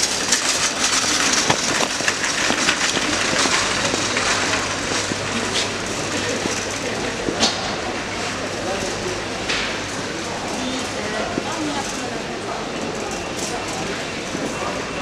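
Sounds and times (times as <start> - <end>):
shoppers chatting: 0.0 - 15.0
shopping trolley rattling: 0.0 - 15.0.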